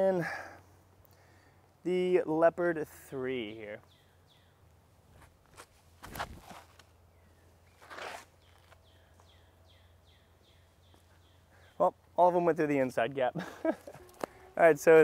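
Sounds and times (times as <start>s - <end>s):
bird chirping: 3.4s - 4.7s, 7.0s - 12.2s
footsteps on dirt: 5.1s - 6.9s, 7.7s - 9.4s.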